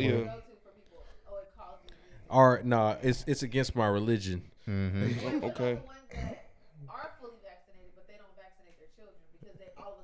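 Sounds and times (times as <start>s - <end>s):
man clearing throat: 6.1s - 6.5s.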